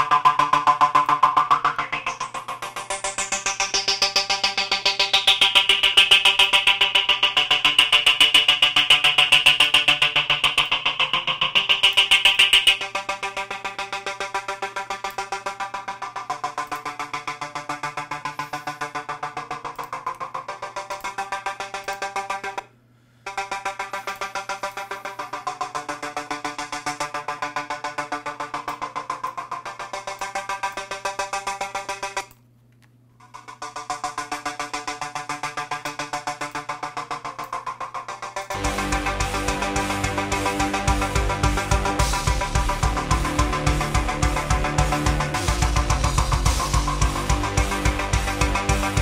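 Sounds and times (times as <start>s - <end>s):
pulsing synth pattern over chords: 0.0s - 22.7s, 23.3s - 32.3s, 33.3s - 49.0s.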